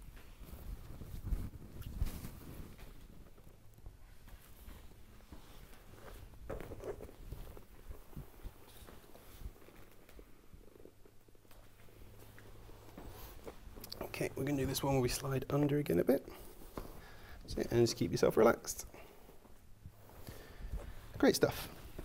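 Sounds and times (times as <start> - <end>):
clothing rustling: 0.0 - 22.0.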